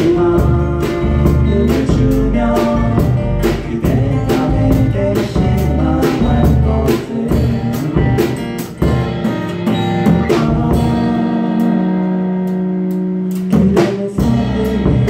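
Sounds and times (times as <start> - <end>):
man singing: 0.0 - 8.4, 10.0 - 12.4, 13.3 - 15.0
acoustic guitars strummed: 0.0 - 15.0
drum kit: 0.0 - 15.0.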